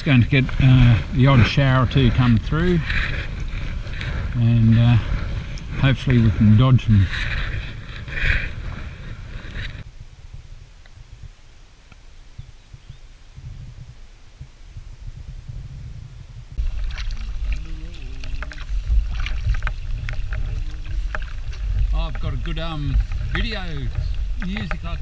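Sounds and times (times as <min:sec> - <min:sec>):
paddle splashing in water: 0:00.0 - 0:04.4, 0:05.0 - 0:09.8, 0:16.6 - 0:25.0
wind rumble on microphone: 0:00.0 - 0:25.0.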